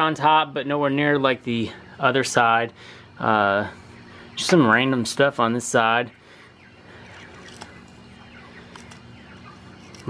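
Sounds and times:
steady low hum: 0:00.0 - 0:10.0
faint bird calls: 0:02.7 - 0:04.8, 0:05.6 - 0:10.0.

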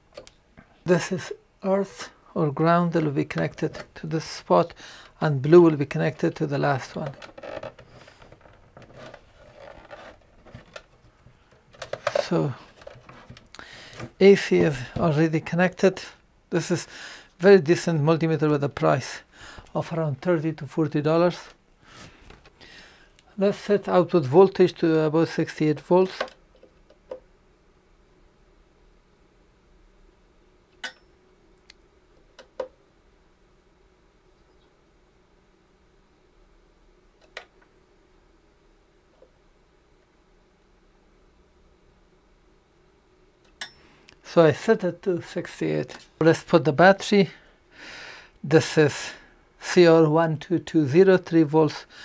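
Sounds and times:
wires rustling and scraping: 0:02.0 - 0:15.6.

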